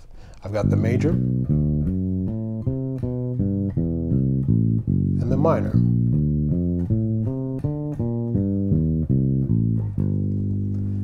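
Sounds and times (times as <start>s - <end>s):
electric bass plucked notes: 0.5s - 11.0s.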